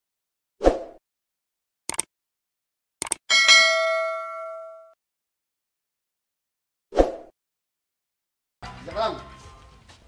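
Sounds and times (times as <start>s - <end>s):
bell ding: 3.3s - 5.0s.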